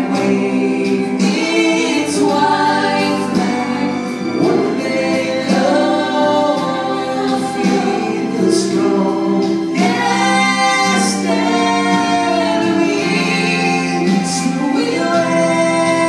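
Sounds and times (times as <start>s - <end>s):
man and boy singing: 0.0s - 16.0s.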